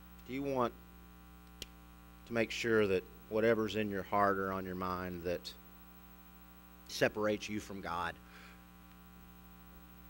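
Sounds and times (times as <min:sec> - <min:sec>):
electrical mains hum: 0:00.0 - 0:10.0
person speaking: 0:06.9 - 0:08.3.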